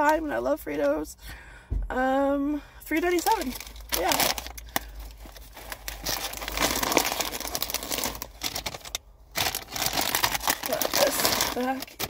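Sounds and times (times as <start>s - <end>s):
plastic bag crinkling: 3.1s - 12.0s
chip bag crinkling: 3.2s - 12.0s.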